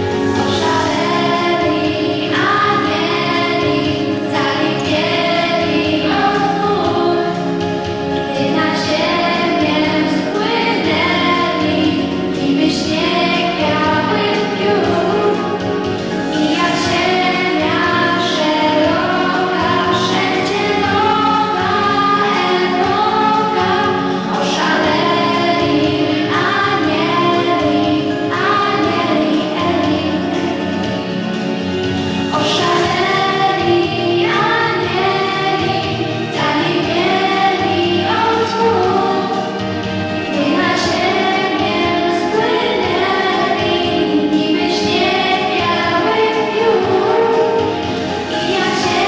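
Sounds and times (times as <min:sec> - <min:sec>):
girl singing into microphone: 0:00.0 - 0:30.8, 0:32.3 - 0:49.0
musical accompaniment: 0:00.0 - 0:49.0.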